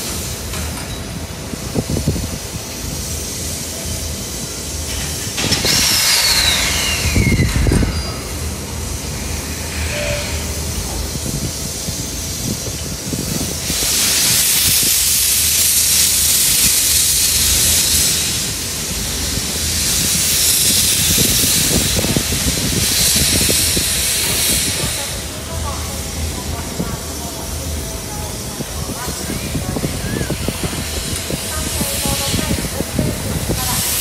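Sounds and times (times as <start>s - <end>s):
steam locomotive hissing: 0.0s - 34.0s.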